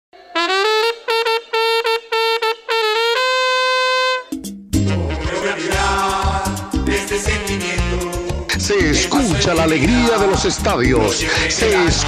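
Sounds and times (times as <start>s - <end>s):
solo trumpet playing: 0.2s - 5.3s.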